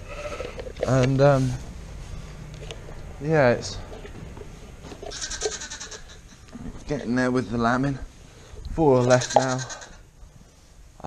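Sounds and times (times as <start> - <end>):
lamb bleating: 0.0 - 0.7, 5.1 - 6.3, 9.0 - 10.0.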